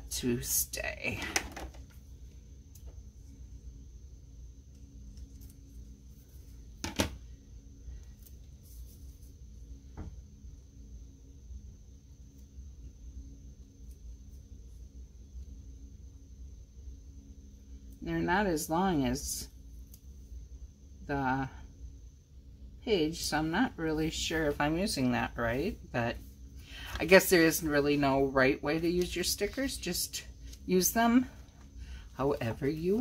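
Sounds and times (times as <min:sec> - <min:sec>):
faint high whine: 0:00.0 - 0:33.0
steady low hum: 0:00.0 - 0:33.0.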